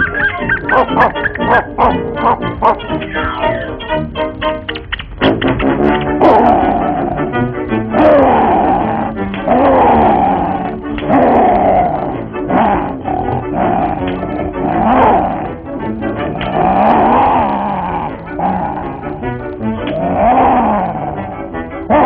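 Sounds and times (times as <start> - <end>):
band music: 0.0 - 22.0
cartoon lions roaring: 6.1 - 22.0.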